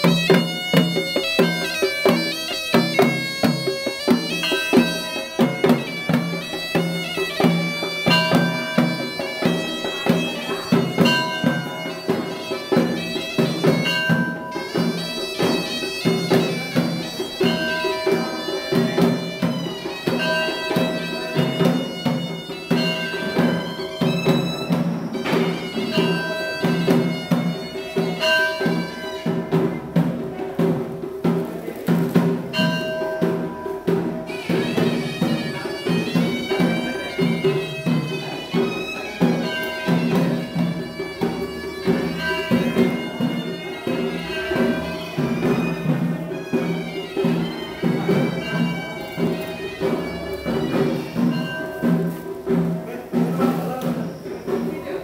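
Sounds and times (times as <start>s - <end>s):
reedy double-reed pipe melody: 0.0s - 55.0s
rhythmic drumming: 0.0s - 55.0s.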